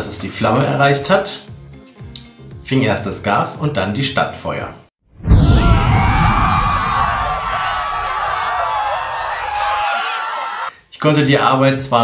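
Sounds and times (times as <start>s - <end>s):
deep rumbling explosion: 5.1s - 9.4s.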